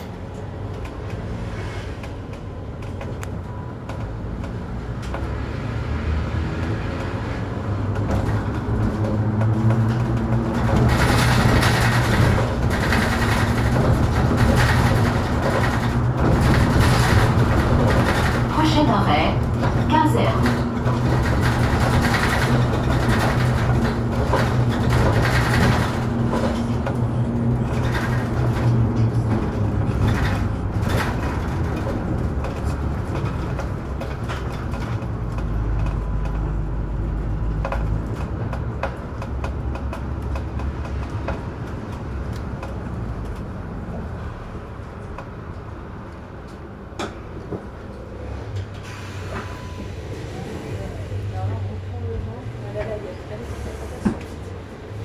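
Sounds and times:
bus engine hum: 0:00.0 - 0:55.0
bodywork rattling and knocking: 0:07.8 - 0:43.3.

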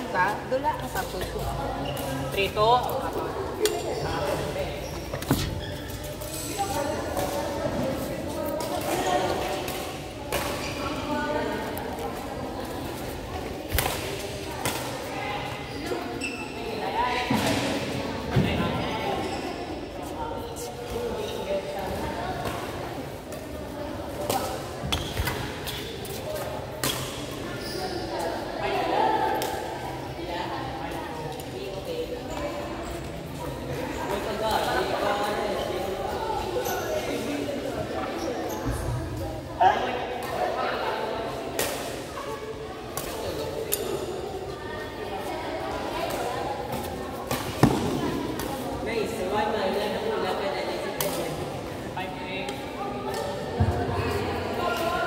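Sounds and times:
voices echoing in a hall: 0:00.0 - 0:55.0
racket and shuttlecock knocks: 0:47.3 - 0:48.5.

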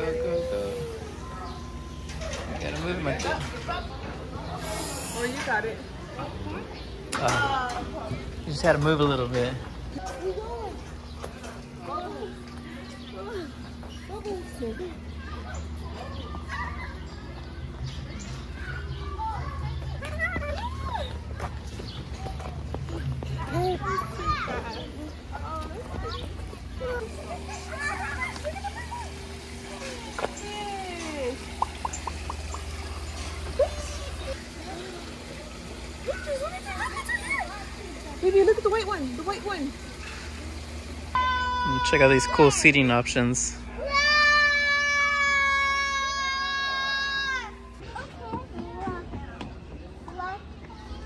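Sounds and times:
children chattering: 0:00.0 - 0:51.0
steady held tone: 0:41.1 - 0:42.7.

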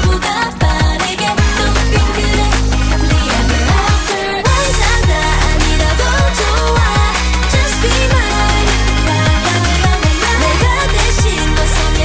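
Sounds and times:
electronic pop backing: 0:00.0 - 0:12.0
female group vocals singing: 0:00.0 - 0:12.0
punchy kick drums: 0:00.0 - 0:12.0.

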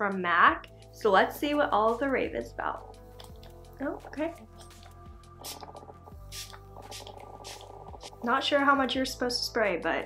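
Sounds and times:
soft background music: 0:00.0 - 0:10.0
setting spray spritzing hisses: 0:05.4 - 0:07.7.

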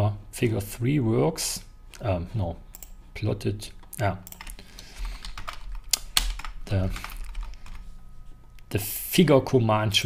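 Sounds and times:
computer keyboard typing: 0:04.2 - 0:07.8.

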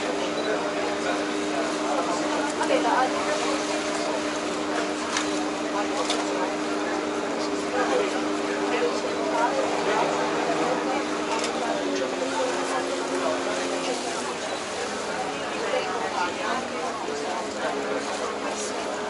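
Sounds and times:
boat engines humming: 0:00.0 - 0:19.0
people talking: 0:00.0 - 0:19.0.

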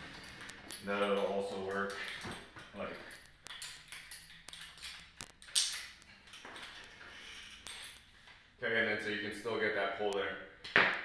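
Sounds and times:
metal clinks of carabiner: 0:00.0 - 0:08.1.

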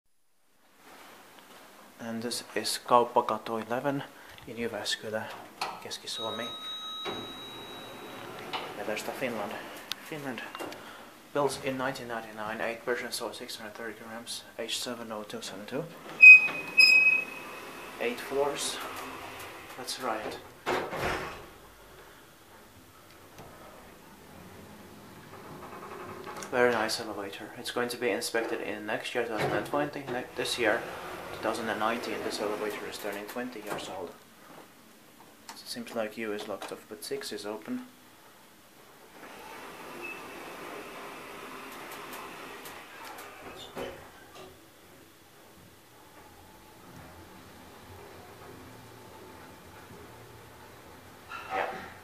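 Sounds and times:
elevator panel beeps: 0:06.2 - 0:08.4, 0:16.2 - 0:17.6
elevator door operator whirring: 0:06.2 - 0:09.1, 0:16.0 - 0:20.3, 0:30.3 - 0:32.9, 0:39.2 - 0:43.9.

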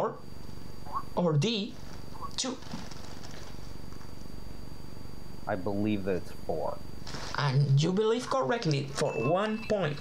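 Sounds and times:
low buzzing: 0:00.0 - 0:09.9
faint high whine: 0:00.0 - 0:10.0.

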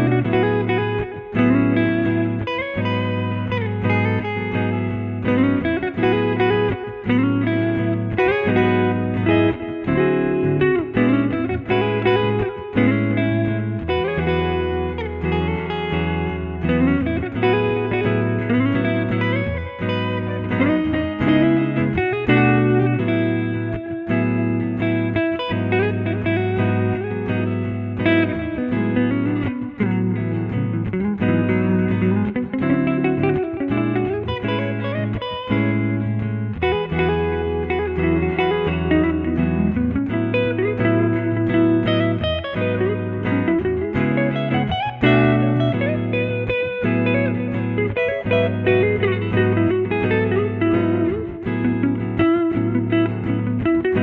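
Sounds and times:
electric guitar solo: 0:00.0 - 0:54.0
looped guitar chords and bass: 0:00.0 - 0:54.0.

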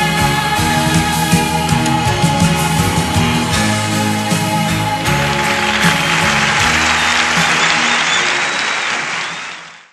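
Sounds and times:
rock band chord: 0:01.8 - 0:08.5
audience applauding: 0:05.1 - 0:09.9
high whistles from crowd: 0:05.5 - 0:09.9.

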